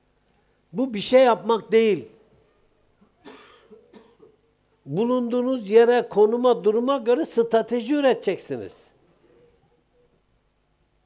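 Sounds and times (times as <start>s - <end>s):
person coughing: 3.1s - 4.4s.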